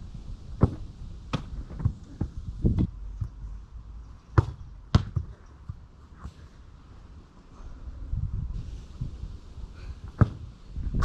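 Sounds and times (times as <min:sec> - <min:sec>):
football thuds: 0:00.6 - 0:03.4, 0:04.3 - 0:05.9, 0:10.1 - 0:11.0.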